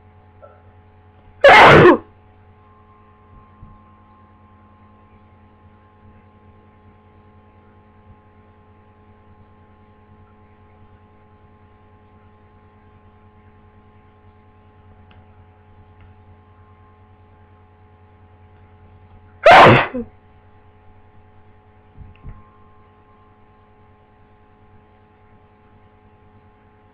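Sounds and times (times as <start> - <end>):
low electrical hum: 0.0 - 26.9
person sneezing: 1.4 - 2.1, 19.4 - 20.1.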